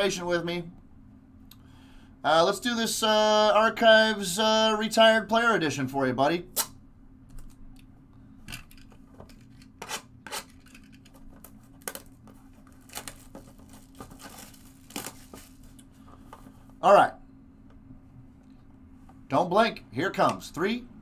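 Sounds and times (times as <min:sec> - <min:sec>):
steady low hum: 0:00.0 - 0:21.0
plastic wrap crinkling and ripping: 0:11.4 - 0:15.8.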